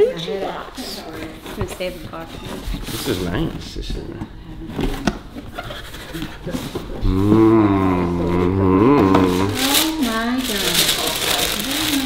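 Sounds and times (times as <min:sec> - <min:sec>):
man humming: 0:07.0 - 0:09.8
tissue paper rustling: 0:09.3 - 0:12.0.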